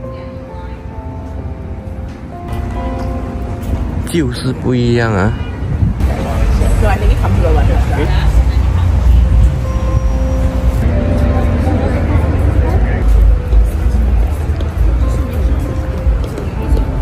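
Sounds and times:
low rumble of traffic: 0:00.0 - 0:17.0
indistinct voices: 0:04.1 - 0:17.0.

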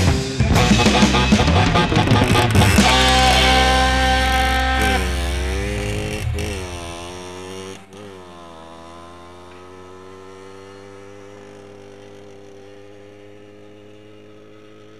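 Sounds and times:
motorcycle engine revving: 0:00.0 - 0:14.9.

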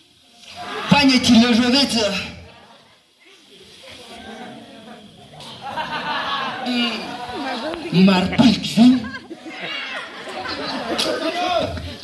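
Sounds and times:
faint voices echoing in a hall: 0:00.2 - 0:12.0
man shouting through a microphone: 0:00.7 - 0:02.4.

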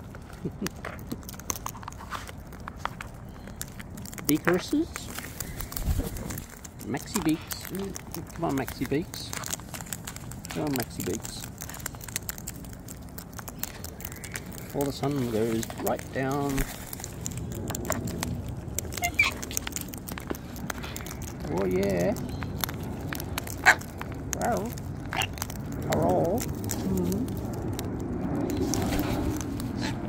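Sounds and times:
birds cracking seed: 0:00.0 - 0:30.0
bird squeak: 0:19.0 - 0:19.4.

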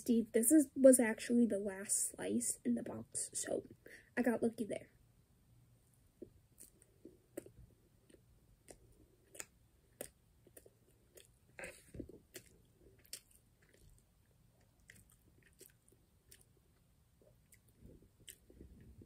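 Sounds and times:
chewing pizza crust: 0:06.2 - 0:19.0
mouth clicks: 0:06.6 - 0:13.4.

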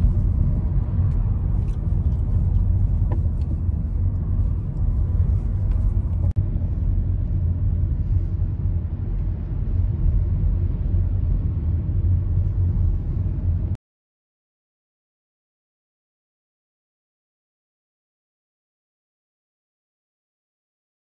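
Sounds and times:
car road and engine rumble: 0:00.0 - 0:13.8.

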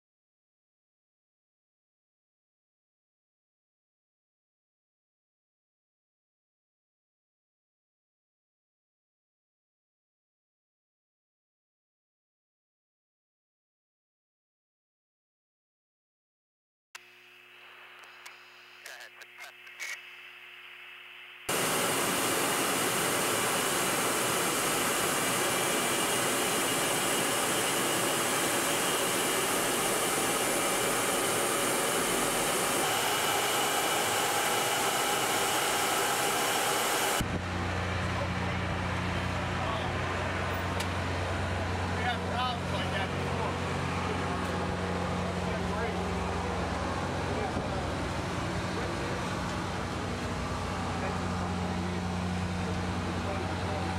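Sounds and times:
radio call: 0:18.0 - 0:20.2
jet noise and air rush in aircraft: 0:21.5 - 0:53.9.

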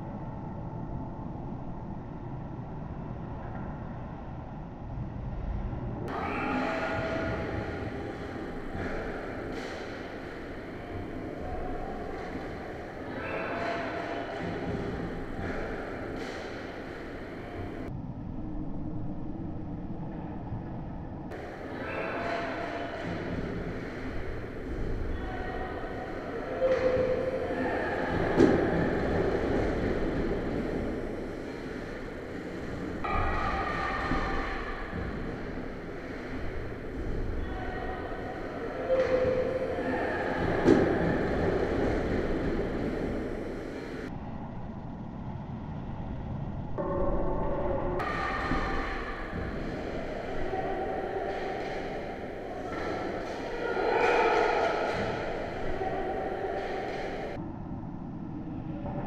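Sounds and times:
low rumble of ice rink: 0:00.0 - 0:59.0
sticks and puck clacking: 0:06.2 - 0:17.9, 0:21.3 - 0:44.1, 0:48.0 - 0:57.4.

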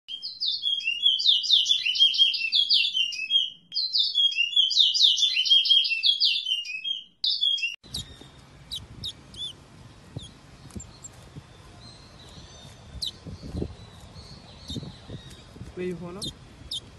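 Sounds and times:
soft bird chirps: 0:00.1 - 0:16.9
songbird warbling: 0:00.2 - 0:16.9.

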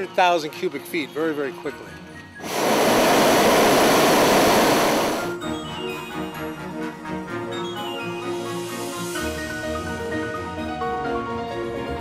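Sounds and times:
propane burners firing: 0:02.4 - 0:05.4.

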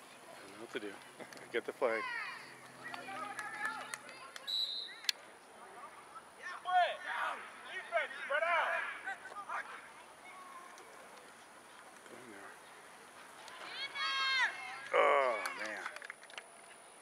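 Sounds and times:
voices shouting outdoors: 0:00.0 - 0:16.1.

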